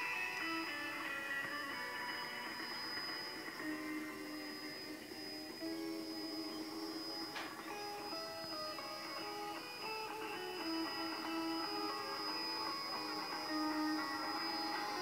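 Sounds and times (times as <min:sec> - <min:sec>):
pop music through radio speaker: 0:00.0 - 0:15.0.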